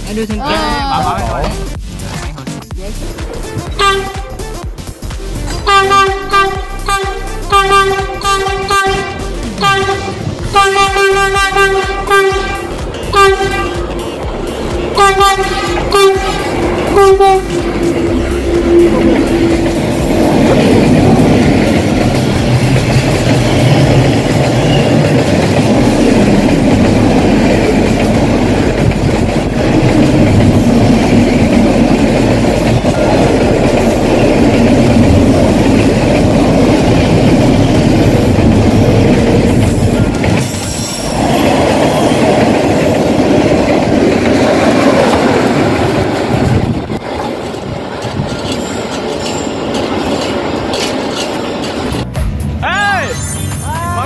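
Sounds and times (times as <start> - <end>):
freight train passing: 0.0 - 53.0.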